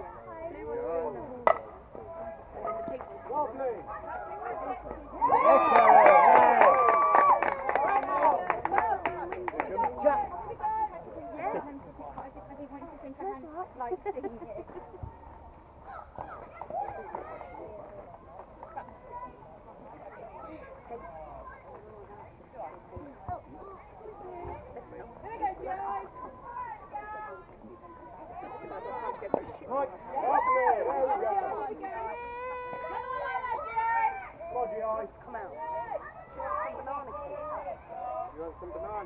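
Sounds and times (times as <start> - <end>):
people calling out and chattering: 0.0 - 39.0
players' voices: 0.0 - 39.0.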